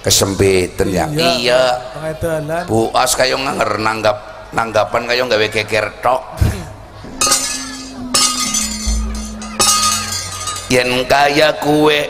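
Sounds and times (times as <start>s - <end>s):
steady low tone: 7.1s - 11.0s
metal plates clanging: 7.2s - 11.2s.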